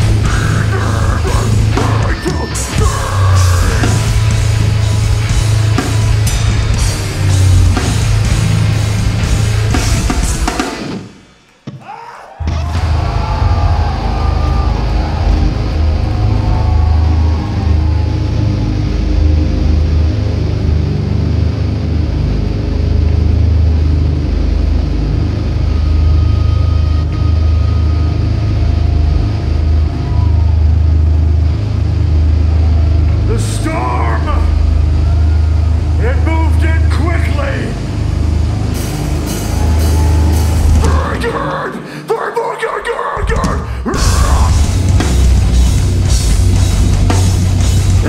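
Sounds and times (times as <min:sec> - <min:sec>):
droning amplified bass and guitar: 0:00.0 - 0:11.6, 0:12.4 - 0:42.1, 0:43.2 - 0:48.0
man shouting over loudspeaker: 0:00.4 - 0:04.0, 0:33.2 - 0:34.8, 0:35.9 - 0:37.9, 0:40.8 - 0:44.7.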